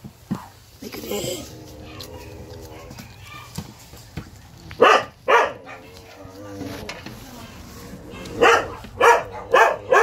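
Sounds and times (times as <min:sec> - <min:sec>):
puppies barking: 0:01.5 - 0:04.1, 0:04.7 - 0:06.7, 0:08.0 - 0:10.0.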